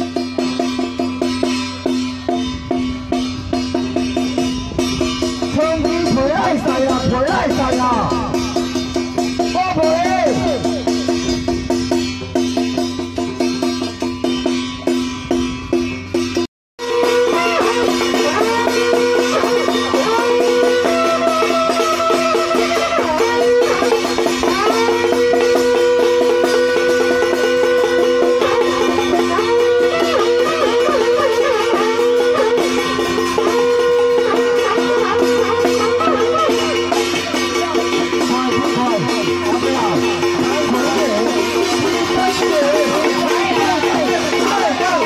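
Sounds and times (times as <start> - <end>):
drumming: 0.0 - 45.0
procession music melody: 0.0 - 45.0.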